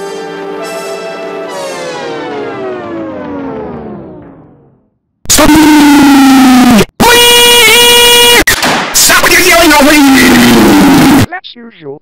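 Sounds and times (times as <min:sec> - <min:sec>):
loud distorted yells: 0:05.3 - 0:11.3.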